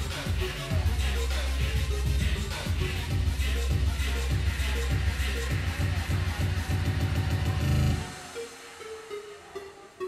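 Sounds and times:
electronic music with pulsing bass: 0.0 - 10.0.

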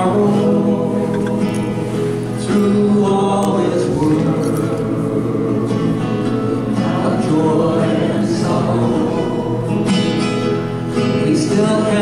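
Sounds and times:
voices singing together: 0.0 - 9.7, 11.2 - 12.0
acoustic guitar strumming: 0.0 - 12.0.

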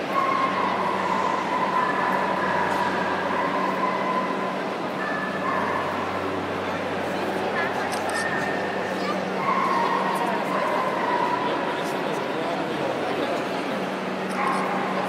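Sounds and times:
crowd chatter in echoing hall: 0.0 - 15.0.

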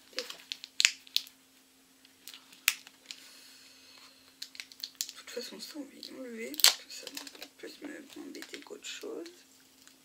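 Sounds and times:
stiff paper sheets snapping: 6.5 - 7.5.

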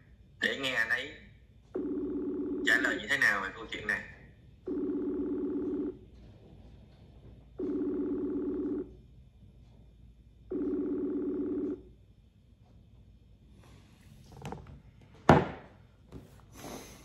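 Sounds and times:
telephone ringback tone: 1.8 - 2.8, 4.7 - 6.0, 7.6 - 8.9, 10.5 - 11.9.

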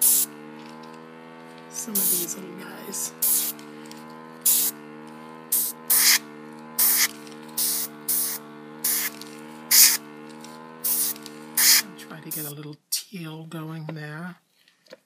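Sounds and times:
airbrush air bursts: 0.0 - 0.4, 1.7 - 4.8, 5.4 - 12.5
compressor motor hum: 0.0 - 12.7.

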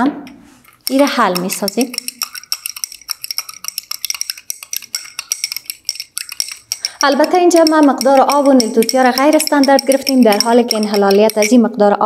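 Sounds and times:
stirrer clinking in beaker: 0.6 - 11.6.

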